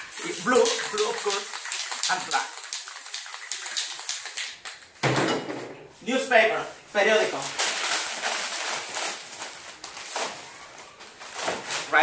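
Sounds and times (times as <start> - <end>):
aerosol spray can hissing: 0.0 - 4.8.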